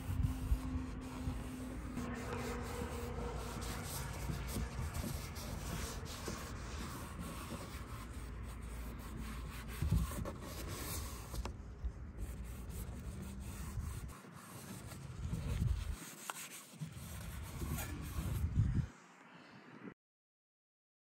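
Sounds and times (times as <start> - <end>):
gloved hand rubbing and handling: 0.0 - 18.8.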